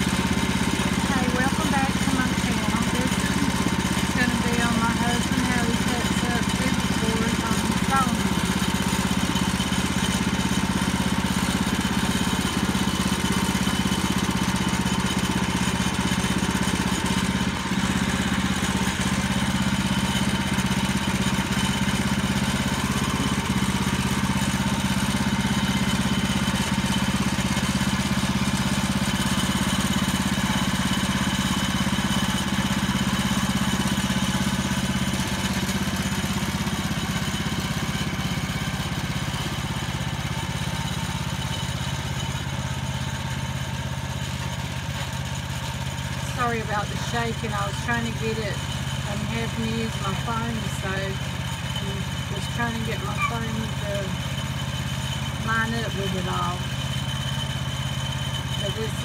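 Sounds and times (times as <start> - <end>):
gasoline engine running: 0.0 - 59.0.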